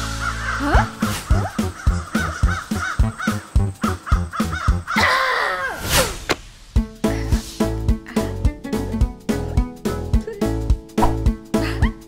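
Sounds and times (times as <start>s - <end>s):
cartoon crows cawing: 0.0s - 5.8s
music with steady beat: 6.7s - 11.7s.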